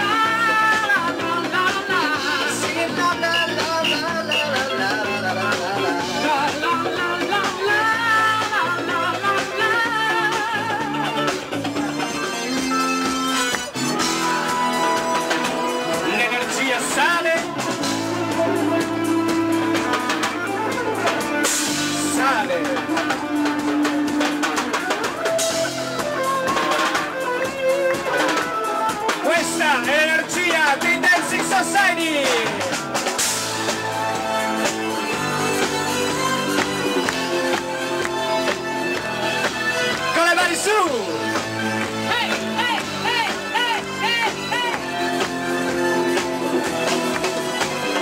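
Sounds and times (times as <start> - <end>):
drum kit: 0.0 - 48.0
electric guitar lead lines: 0.0 - 48.0
live disco band through pa: 0.0 - 48.0.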